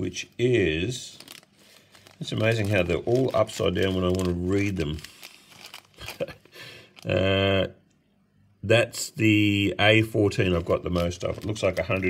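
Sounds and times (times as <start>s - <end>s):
plastic bag crinkling: 0.1s - 7.6s, 10.2s - 12.0s.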